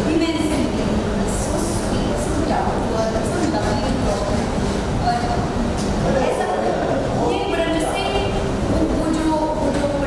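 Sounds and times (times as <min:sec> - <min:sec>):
woman talking: 0:00.0 - 0:04.4, 0:05.0 - 0:05.5, 0:06.2 - 0:10.0.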